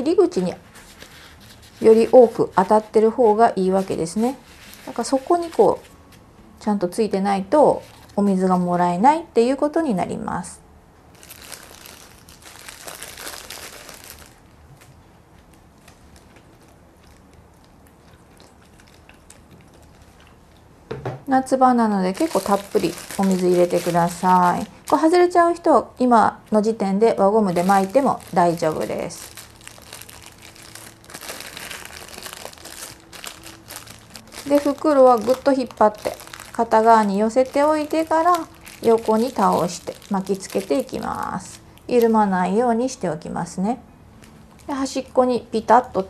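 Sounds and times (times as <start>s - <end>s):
plastic bag crinkling: 0.0s - 5.9s, 7.7s - 8.5s, 11.1s - 20.6s, 22.0s - 25.6s, 27.2s - 42.1s.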